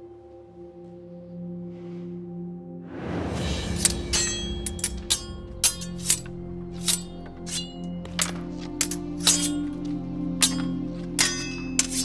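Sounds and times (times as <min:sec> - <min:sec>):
held musical drone: 0:00.0 - 0:12.0
sword blades clashing: 0:03.7 - 0:12.0.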